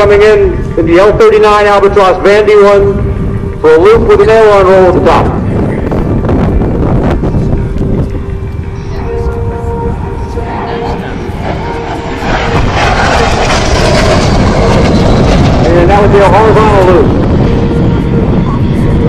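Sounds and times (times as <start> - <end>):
jet passing at high speed: 0.0 - 19.0.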